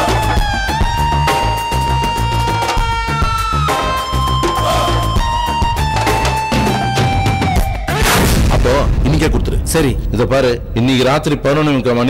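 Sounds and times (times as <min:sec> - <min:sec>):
booming transition effect: 0:08.0 - 0:12.0
man speaking: 0:08.6 - 0:12.0.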